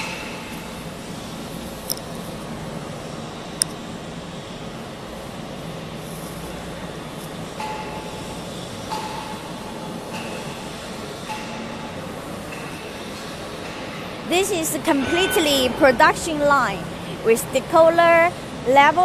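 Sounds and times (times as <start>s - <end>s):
machine drone and hum: 0.0s - 18.9s.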